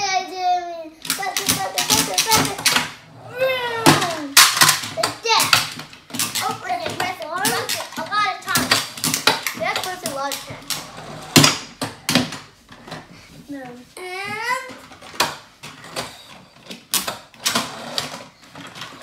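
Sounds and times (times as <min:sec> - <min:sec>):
toy cars clicking and clattering: 0:01.0 - 0:13.1, 0:14.3 - 0:19.0
children making engine noises: 0:01.2 - 0:04.4.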